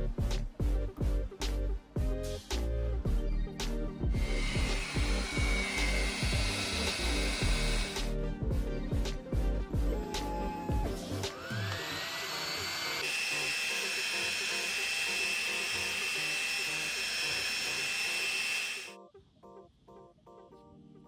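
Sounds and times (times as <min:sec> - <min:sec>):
soft background music: 0:00.0 - 0:21.0.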